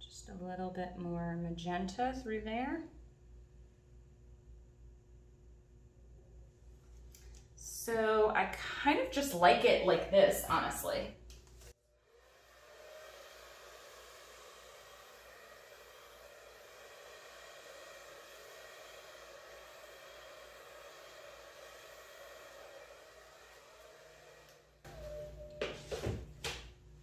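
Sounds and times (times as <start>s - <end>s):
hair dryer blowing air: 8.9s - 11.0s, 11.6s - 26.6s.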